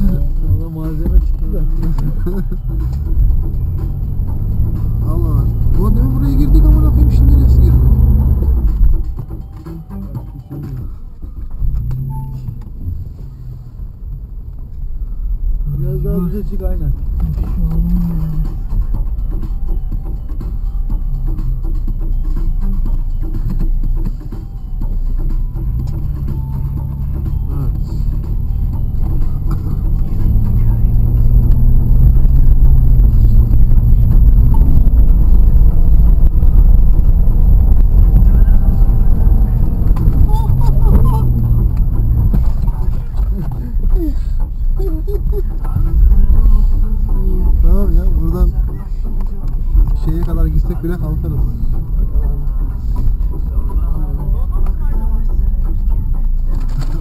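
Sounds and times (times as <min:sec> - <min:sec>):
car engine working hard: 0:00.0 - 0:57.0
voices: 0:38.0 - 0:57.0.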